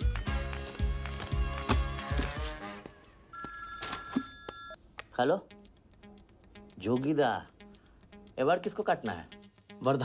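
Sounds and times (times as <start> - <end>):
mobile phone ringing: 3.3 - 4.8.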